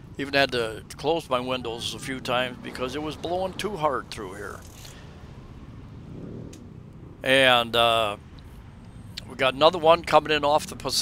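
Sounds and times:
traffic rumble: 0.0 - 11.0.

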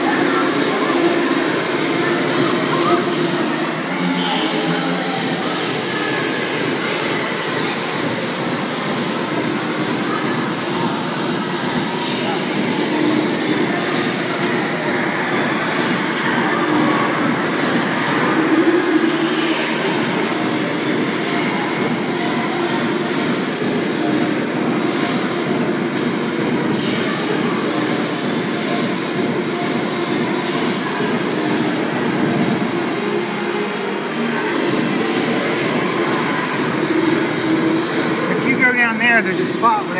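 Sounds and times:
many voices chattering: 0.0 - 39.9.

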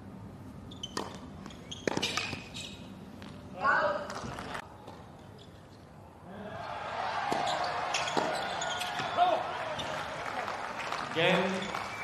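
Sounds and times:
rackets hitting tennis ball: 0.9 - 2.5, 7.3 - 9.2
voices from court and crowd: 6.2 - 12.0.

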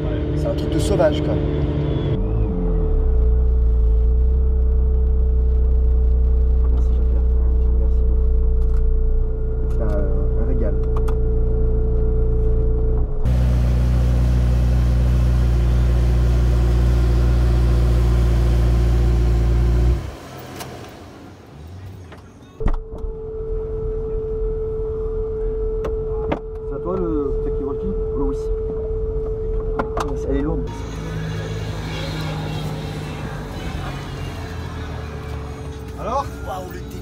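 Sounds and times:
car engine idling: 0.0 - 22.6, 30.6 - 37.0
low steady rumble: 2.0 - 20.1.

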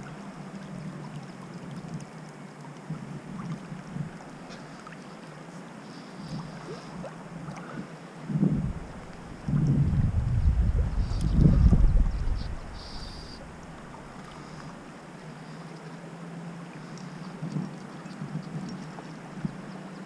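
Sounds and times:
river water flowing: 0.0 - 20.0
wind rumbling on microphone: 6.3 - 14.2.

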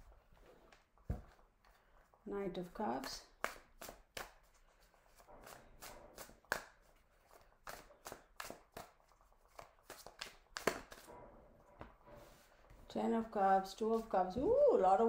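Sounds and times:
cards being shuffled: 0.7 - 11.1
sharp card snaps and flicks: 7.6 - 11.1.

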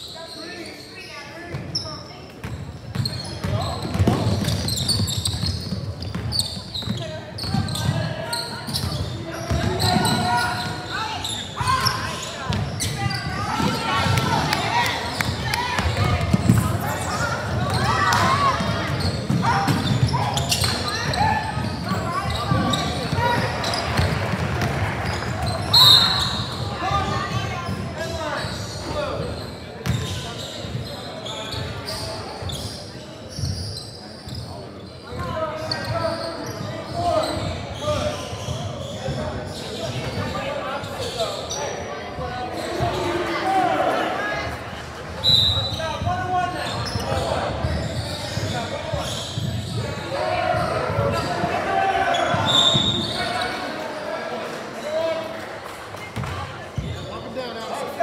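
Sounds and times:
players' voices echoing: 0.0 - 58.0
basketball bouncing on wooden court: 2.4 - 8.0, 8.7 - 10.7, 15.2 - 16.8, 17.4 - 27.9, 29.8 - 30.2, 56.2 - 57.0
referee's whistle: 25.5 - 26.6, 45.2 - 45.9, 52.1 - 53.5.

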